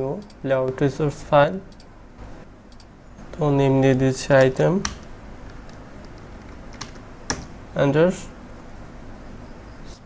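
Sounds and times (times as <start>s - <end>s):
low background hum: 0.0s - 10.0s
computer keyboard keystrokes: 4.4s - 7.5s.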